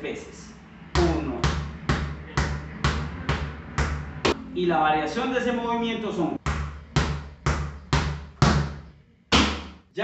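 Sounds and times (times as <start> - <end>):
ball bouncing on tiled floor: 1.0 - 4.4, 6.4 - 9.8.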